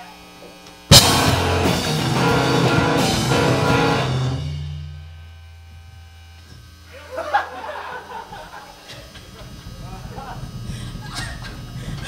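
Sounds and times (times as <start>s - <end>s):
amplifier hum and buzz: 0.0s - 12.0s
audience voices and laughter: 6.9s - 12.0s.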